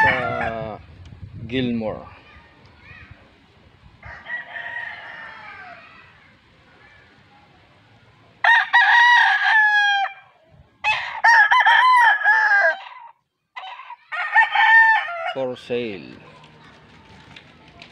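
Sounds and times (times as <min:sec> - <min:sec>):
rooster crowing: 0:00.0 - 0:00.7, 0:04.0 - 0:05.9, 0:08.4 - 0:15.4.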